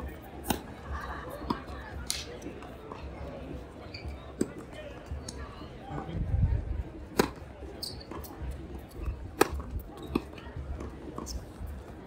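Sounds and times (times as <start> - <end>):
shoe squeak: 3.8 - 4.5, 7.7 - 8.4
tennis racket hitting ball: 7.1 - 7.4, 9.4 - 10.3.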